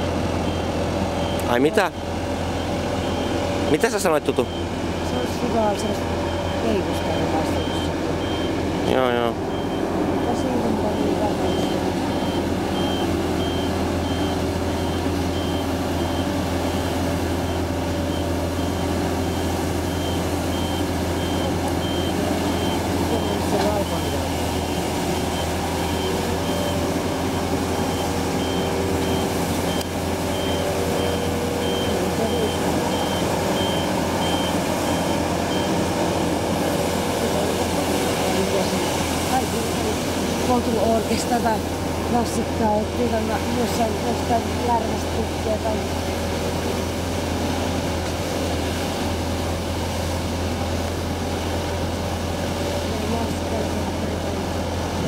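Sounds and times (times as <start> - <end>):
low engine hum: 0.0 - 55.0
reversing alarm beeps: 0.4 - 8.6, 9.5 - 35.9.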